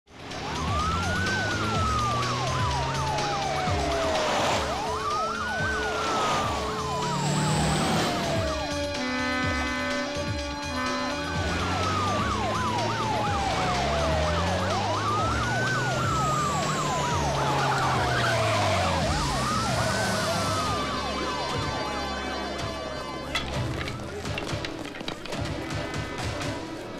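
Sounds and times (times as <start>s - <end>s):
police siren wailing: 0.1s - 26.9s.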